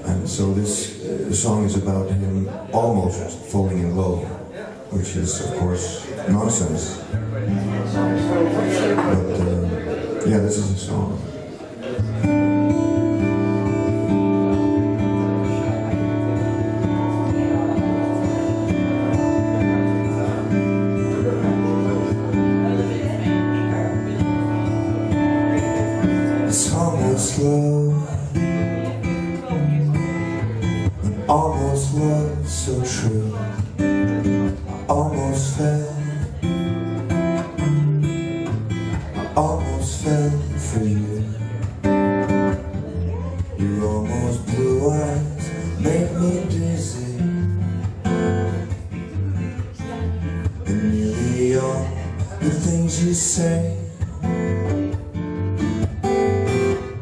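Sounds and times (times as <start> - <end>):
solo acoustic guitar: 0.0 - 57.0.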